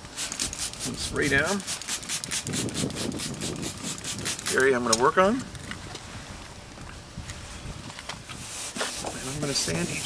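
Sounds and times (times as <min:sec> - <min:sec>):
spray bottle squirting water: 0:00.0 - 0:04.7.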